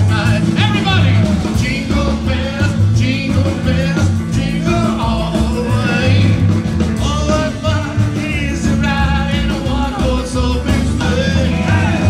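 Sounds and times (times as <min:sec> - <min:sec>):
acoustic and electric guitars: 0:00.0 - 0:12.0
drums: 0:00.0 - 0:12.0
man singing: 0:00.0 - 0:12.0
slapped upright bass: 0:00.0 - 0:12.0.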